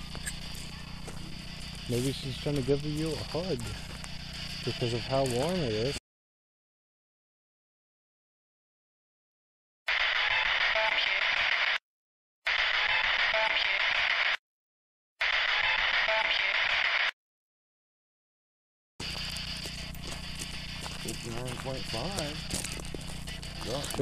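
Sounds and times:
hissy filtered voice clip: 0.5s - 3.9s, 4.6s - 6.0s, 21.0s - 22.8s, 23.5s - 24.0s.

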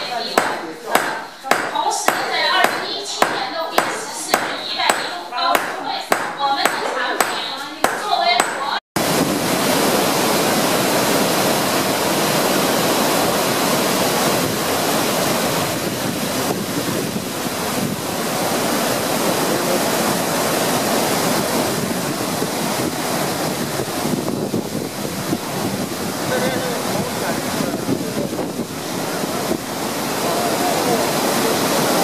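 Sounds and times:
waterfall rushing: 0.0s - 32.0s
wind buffeting microphone: 9.0s - 32.0s.

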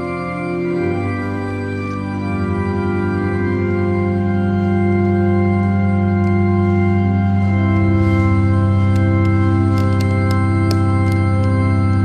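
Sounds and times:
organ playing sustained chords: 0.0s - 12.0s.

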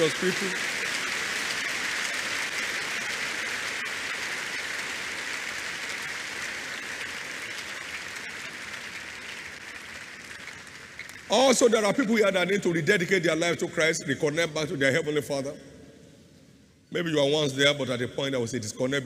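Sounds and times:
crowd clapping: 0.0s - 12.6s.

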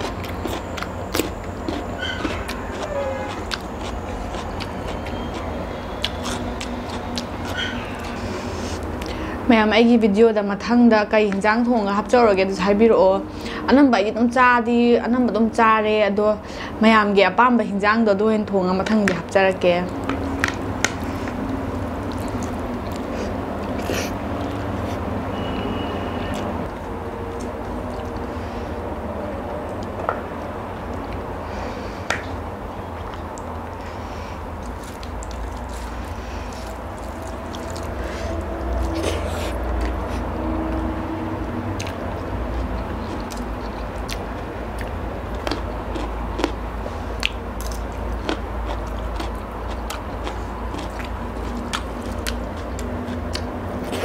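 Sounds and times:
person chewing food: 0.0s - 9.2s, 20.0s - 25.1s, 26.3s - 28.4s, 32.1s - 40.9s, 41.8s - 54.0s
steady low rumble: 26.4s - 53.8s.

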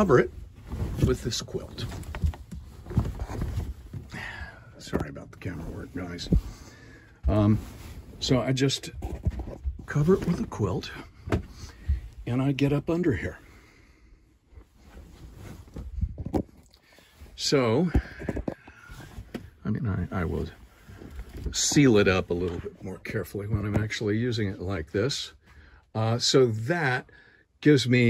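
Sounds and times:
fabric rustling: 0.0s - 4.1s, 14.6s - 16.1s
soft bumps: 0.1s - 12.2s.

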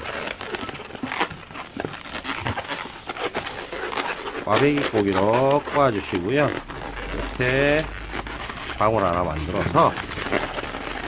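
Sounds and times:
balloon squeaking as twisted: 0.0s - 11.0s.

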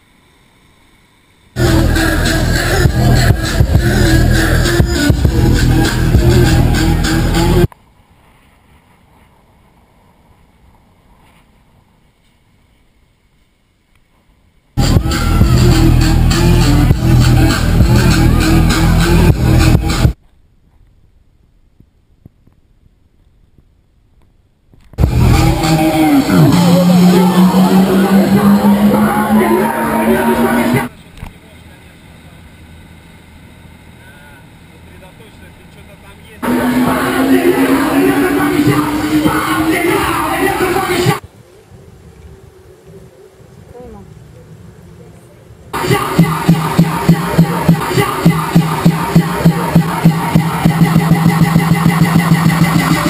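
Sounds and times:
motorboat engine drone: 0.0s - 7.7s, 25.0s - 41.0s
wind rumbling on microphone: 41.2s - 45.8s.

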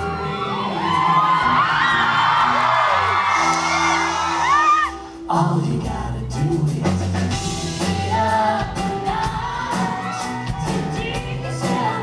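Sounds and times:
audience whooping and screaming: 0.0s - 5.2s, 9.4s - 11.2s
live rock band playing: 0.0s - 12.0s.

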